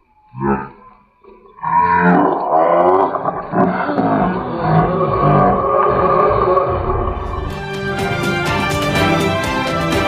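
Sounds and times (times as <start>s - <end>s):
animal calls with wavering pitch: 0.0s - 7.5s.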